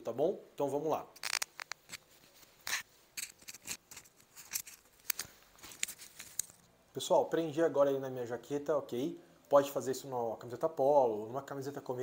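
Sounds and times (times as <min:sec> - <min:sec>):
lapel microphone handling rustles: 0:01.2 - 0:06.7.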